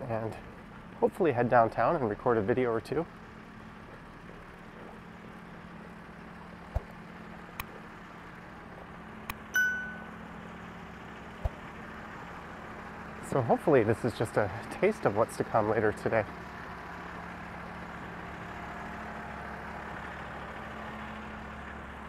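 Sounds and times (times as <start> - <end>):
faint traffic: 0.0 - 22.0
short metallic ding: 9.5 - 10.2.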